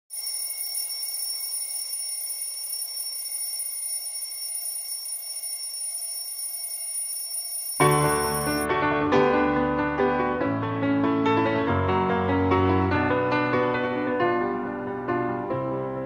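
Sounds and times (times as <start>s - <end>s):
high-pitched electronic alarm: 0.1s - 8.7s
piano music: 7.8s - 16.0s.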